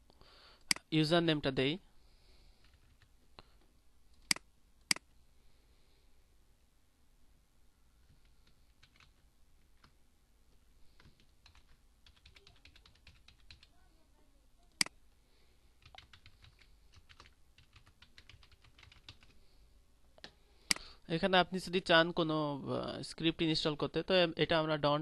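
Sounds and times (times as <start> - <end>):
computer keyboard typing: 2.6 - 3.1, 8.1 - 9.2, 11.0 - 13.7, 15.8 - 19.4.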